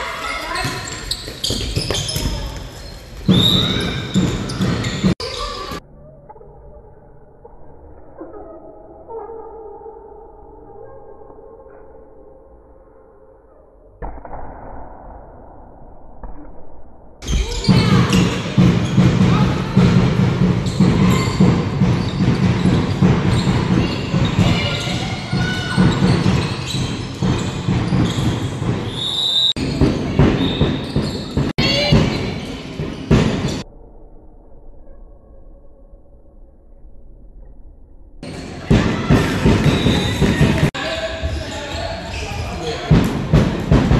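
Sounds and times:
ball bouncing in sports hall: 0.0s - 6.4s, 16.0s - 33.6s, 38.2s - 43.9s.

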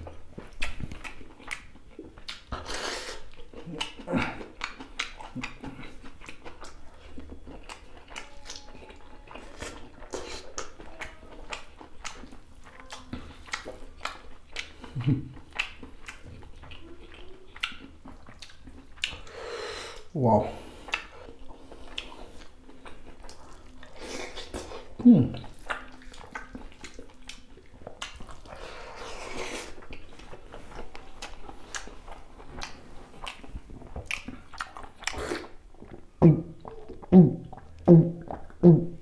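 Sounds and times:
chewing with lip smacks: 0.0s - 19.3s, 20.8s - 38.7s.

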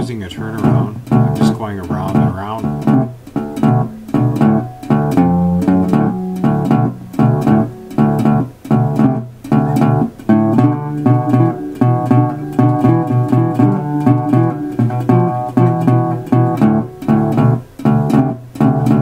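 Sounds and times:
slide resonator guitar shuffle: 0.0s - 19.0s.

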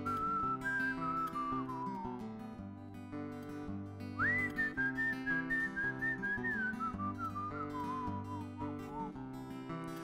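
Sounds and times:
man whistling a melody: 0.0s - 2.6s, 4.0s - 9.3s
acoustic guitar picking: 0.0s - 10.0s.

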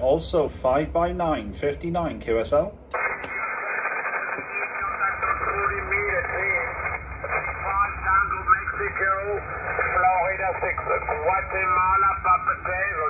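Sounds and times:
radio band noise hiss: 2.9s - 13.0s
faint radio voices: 3.0s - 13.0s.

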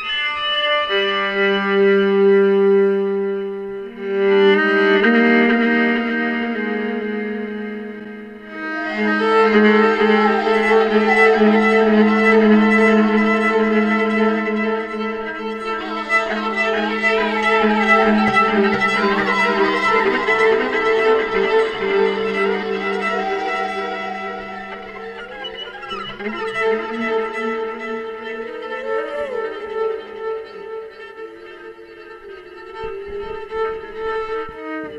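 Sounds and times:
bowed violin melody: 0.0s - 34.9s
steady low held note: 7.7s - 30.8s.

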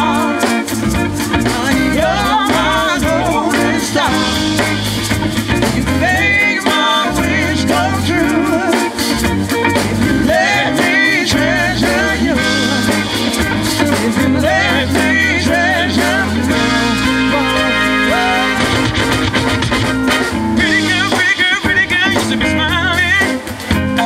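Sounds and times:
person singing: 0.0s - 9.2s, 10.0s - 19.2s
bass: 0.0s - 24.0s
drums: 0.0s - 24.0s.

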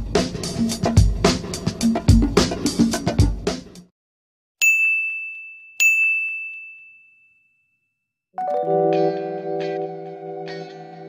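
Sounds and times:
notification bell ding: 4.6s - 7.6s.

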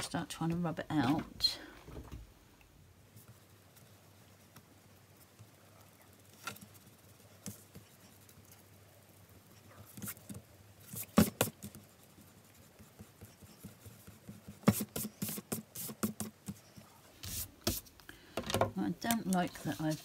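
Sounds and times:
eraser rubbing on paper: 9.6s - 17.9s, 19.3s - 20.0s.

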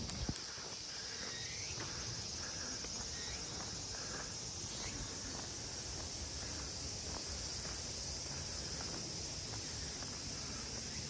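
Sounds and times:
footsteps on paved path: 0.0s - 11.0s
high-pitched insect chorus: 0.0s - 11.0s.

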